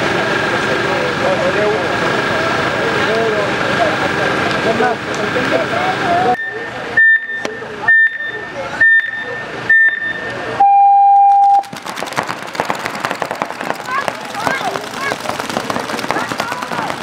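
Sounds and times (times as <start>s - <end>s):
long lower electronic tone: 6.4s - 11.7s
short high beeps: 6.4s - 11.7s
paintball markers firing rapidly: 11.6s - 17.0s.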